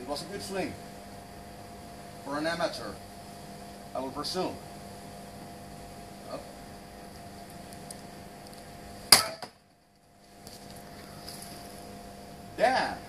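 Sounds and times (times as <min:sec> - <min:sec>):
sword striking wooden pole: 0:09.1 - 0:09.6.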